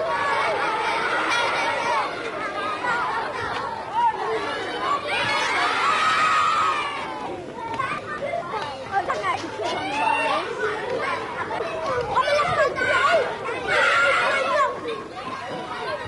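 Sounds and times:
high voices chattering: 0:00.0 - 0:16.0.

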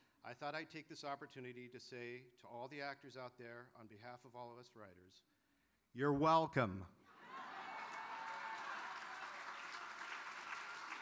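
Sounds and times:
audience applauding: 0:07.2 - 0:11.0.

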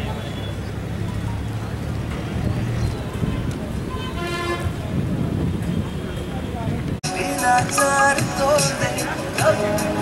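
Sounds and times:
vehicle horn toot: 0:03.9 - 0:04.8.

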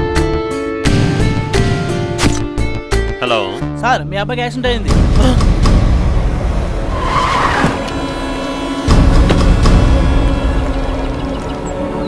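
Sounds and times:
tyres skidding and screeching: 0:06.5 - 0:12.0.

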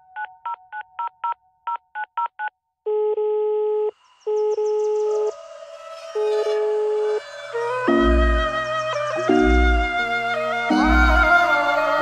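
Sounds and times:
music: 0:04.4 - 0:12.0.

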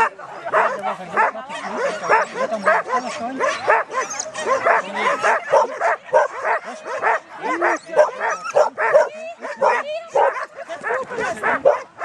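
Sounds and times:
dog barking rapidly: 0:00.0 - 0:12.0.

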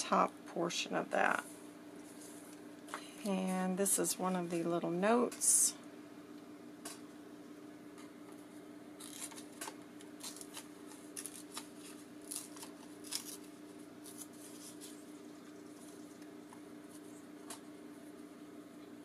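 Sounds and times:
paper rustling and crinkling: 0:09.0 - 0:16.2.

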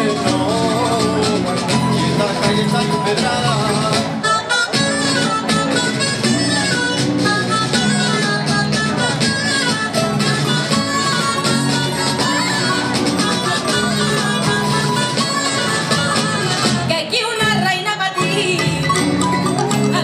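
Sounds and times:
plucked-string band playing folk music: 0:00.0 - 0:20.0.

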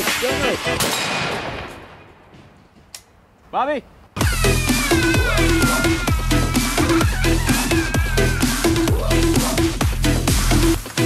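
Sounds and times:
rifle shot echo: 0:00.8 - 0:02.2.

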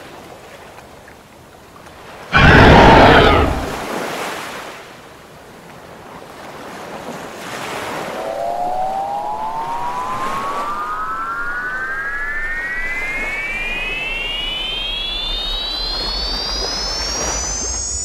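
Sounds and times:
electronic tone rising in pitch: 0:08.0 - 0:18.0
loud whoosh: 0:08.0 - 0:18.0.

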